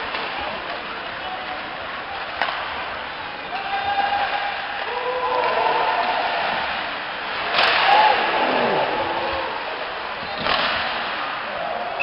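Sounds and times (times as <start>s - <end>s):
arena crowd din: 0.0s - 12.0s
spectators shouting: 7.6s - 9.9s.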